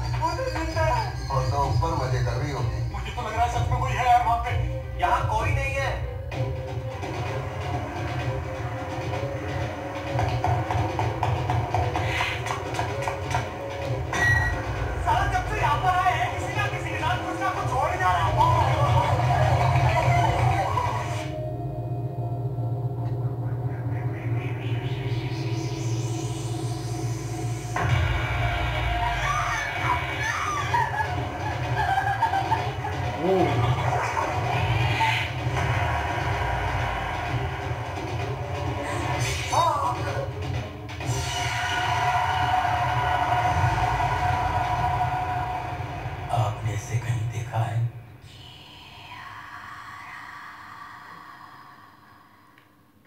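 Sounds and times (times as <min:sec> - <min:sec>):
low droning horror score: 0:06.4 - 0:47.3, 0:47.9 - 0:53.0
low rumble: 0:13.6 - 0:52.6
sustained droning tone: 0:19.0 - 0:30.1.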